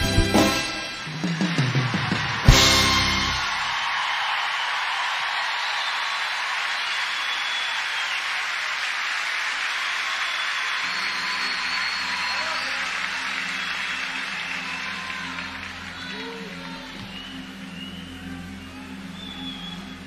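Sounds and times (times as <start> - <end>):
audience applauding and cheering: 0.0 - 20.0.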